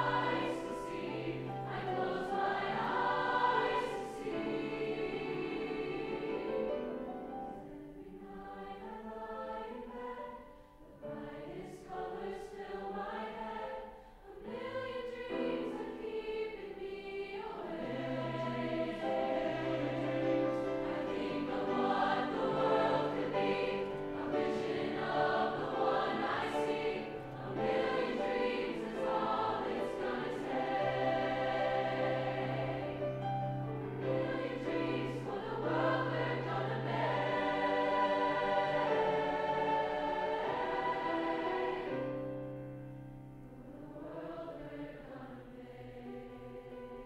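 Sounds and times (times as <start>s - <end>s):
choir singing: 0.0s - 47.0s.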